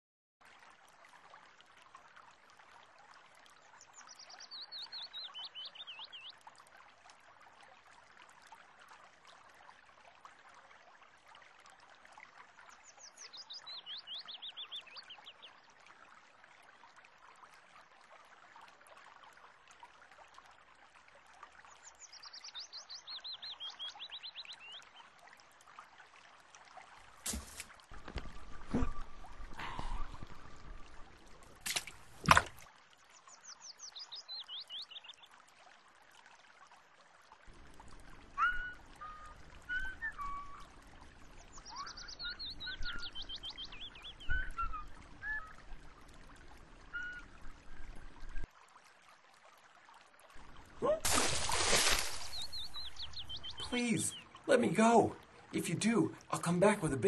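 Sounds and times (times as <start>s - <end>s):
soft water ambience: 0.4s - 57.0s.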